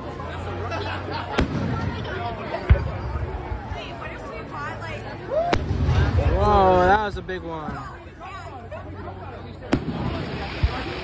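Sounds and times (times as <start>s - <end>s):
crowd talking: 0.0s - 11.0s
firework bang: 1.3s - 3.4s, 5.5s - 6.5s, 9.7s - 11.0s.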